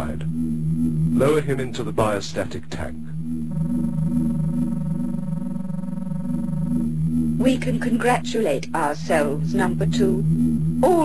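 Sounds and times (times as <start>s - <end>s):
steady electronic tone: 0.0s - 2.2s, 2.8s - 11.0s
low pulsing electronic hum: 0.0s - 11.0s.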